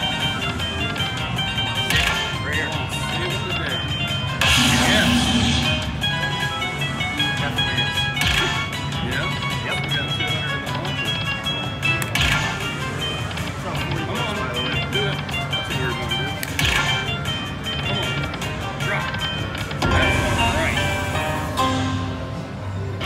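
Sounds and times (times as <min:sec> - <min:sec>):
slot machine music and chimes: 0:00.0 - 0:23.0
bright burst of sound: 0:04.4 - 0:06.0.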